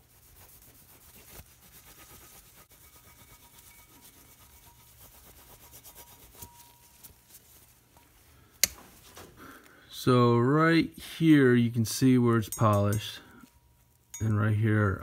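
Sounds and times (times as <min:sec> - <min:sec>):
rag rubbing on metal cover: 0:00.0 - 0:07.2.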